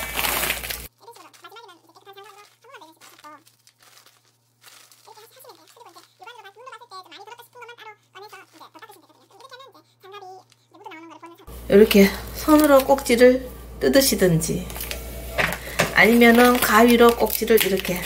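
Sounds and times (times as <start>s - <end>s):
dried chili peppers rustling: 0.0s - 6.9s, 11.8s - 13.2s, 14.5s - 18.0s
low steady hum: 1.7s - 18.0s.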